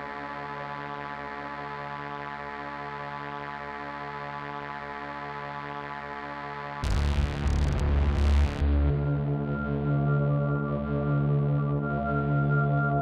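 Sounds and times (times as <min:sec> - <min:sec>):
sustained electronic drone: 0:06.8 - 0:11.8.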